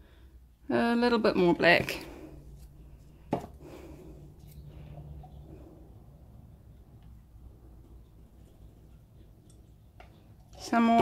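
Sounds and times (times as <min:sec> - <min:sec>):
low room hum: 0:00.0 - 0:10.6.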